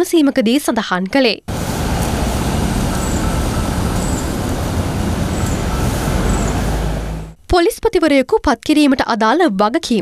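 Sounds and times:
car engine rumble: 1.5s - 7.4s
traffic noise: 1.5s - 7.4s.

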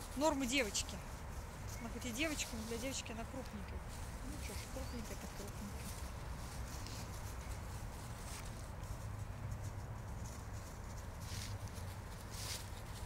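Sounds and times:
dogs running through dry leaves: 0.0s - 13.0s.

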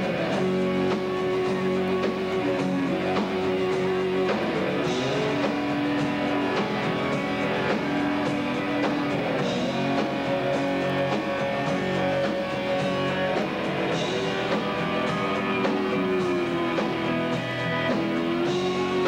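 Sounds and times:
drums: 0.0s - 19.0s
electric guitars: 0.0s - 19.0s.

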